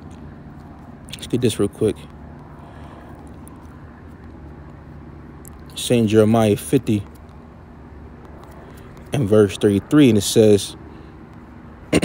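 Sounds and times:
low background rumble and hum: 0.0 - 12.0.

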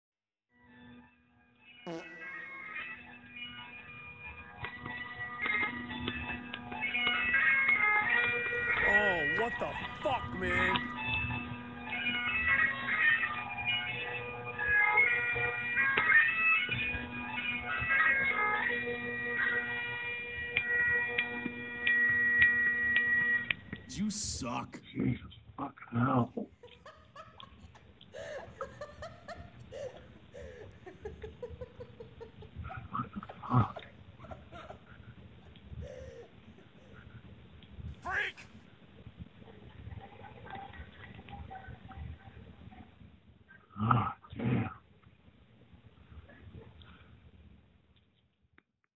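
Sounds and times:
faint bagpipe melody: 1.9 - 3.3
loud short cries: 38.0 - 38.5.

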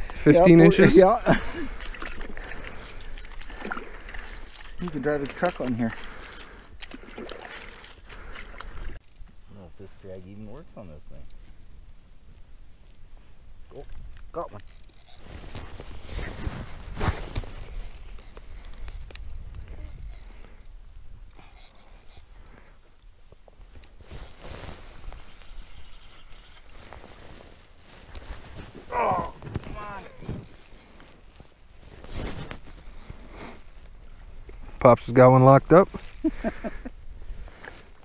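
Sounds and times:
crunching footsteps on snow: 15.1 - 19.1, 23.6 - 34.4.

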